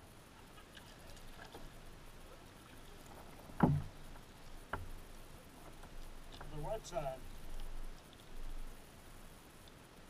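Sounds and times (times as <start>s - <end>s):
hollow knock on kayak: 3.6s - 3.9s, 4.7s - 4.9s.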